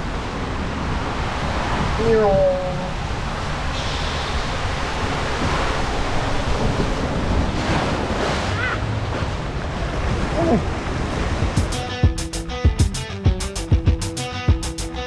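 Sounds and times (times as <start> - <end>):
water rushing down a waterslide: 0.0 - 11.6
water churning and splashing: 0.0 - 11.8.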